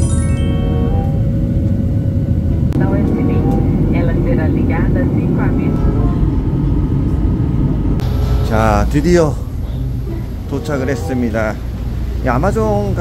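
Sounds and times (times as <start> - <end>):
airliner cabin rumble: 0.7 - 13.0
faint voices: 8.4 - 13.0.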